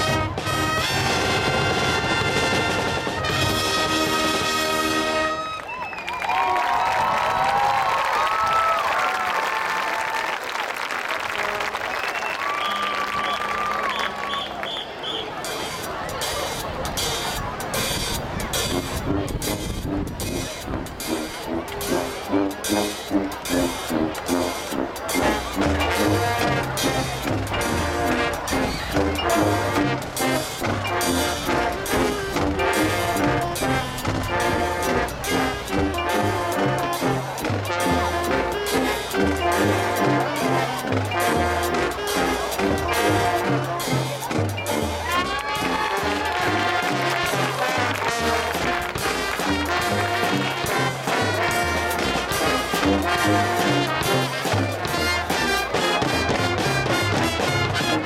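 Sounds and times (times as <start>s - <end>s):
marching band drum beats: 0.0s - 5.4s, 12.2s - 58.0s
brass playing: 0.0s - 5.7s, 11.1s - 15.4s, 18.6s - 58.0s.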